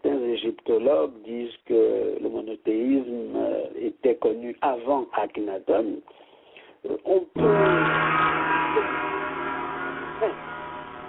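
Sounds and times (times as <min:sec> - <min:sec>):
gong ringing: 0:07.4 - 0:11.0.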